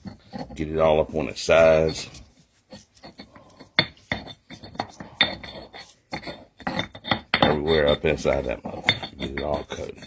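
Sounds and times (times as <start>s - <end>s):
pestle grinding in stone mortar: 0.0s - 10.0s
stone clinking on stone: 1.7s - 10.0s.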